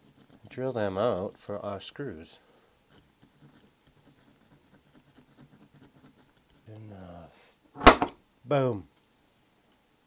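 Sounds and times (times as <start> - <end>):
center punch snapping: 7.8 - 8.2.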